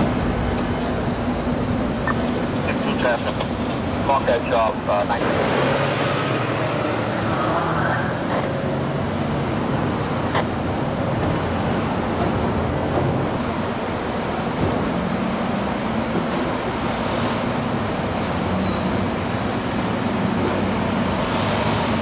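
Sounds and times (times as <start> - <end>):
road traffic noise: 0.0 - 22.0.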